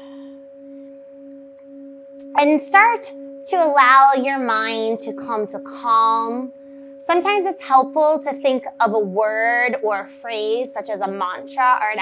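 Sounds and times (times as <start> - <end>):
singing bowl ringing: 0.0 - 12.0.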